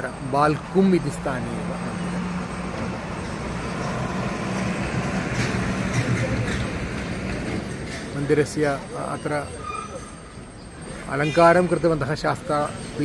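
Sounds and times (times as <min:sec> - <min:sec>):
vehicle engine humming: 0:00.0 - 0:09.2
road noise: 0:00.0 - 0:13.0.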